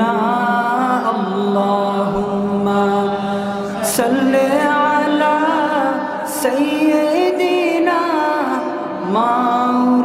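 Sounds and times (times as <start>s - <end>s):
man chanting devotional song: 0.0s - 10.0s.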